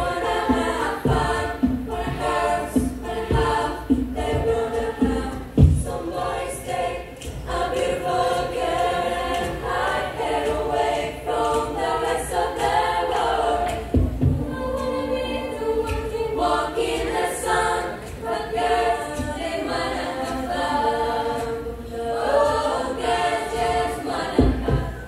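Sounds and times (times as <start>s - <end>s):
deep thumps: 0.0s - 6.0s
women's choir singing a cappella: 0.0s - 25.0s.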